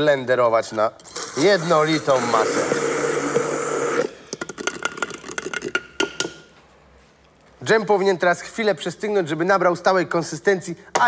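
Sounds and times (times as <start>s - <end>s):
immersion blender running: 1.1s - 4.2s.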